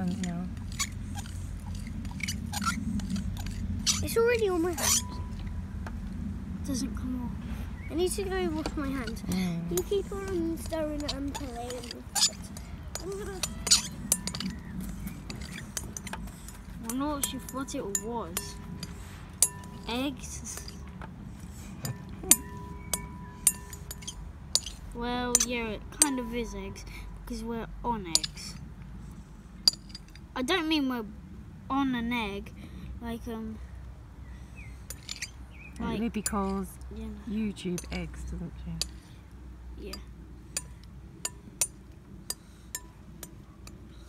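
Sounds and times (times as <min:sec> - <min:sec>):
glass bowl clinking: 0:21.8 - 0:24.7.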